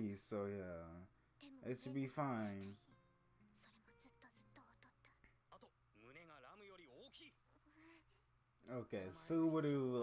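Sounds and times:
faint cartoon dialogue: 1.3 - 10.0.

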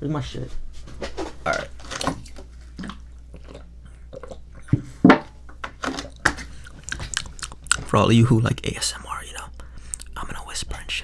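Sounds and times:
man gulping water: 2.8 - 5.4.

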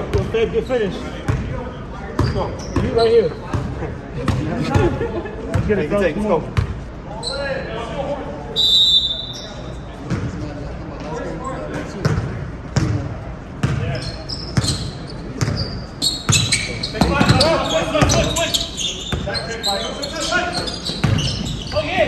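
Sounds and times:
sneaker squeaks: 0.0 - 4.4, 6.5 - 7.7, 8.6 - 10.4, 13.6 - 22.0
basketball bouncing on gym floor: 1.2 - 1.5, 12.0 - 15.7, 20.9 - 22.0.

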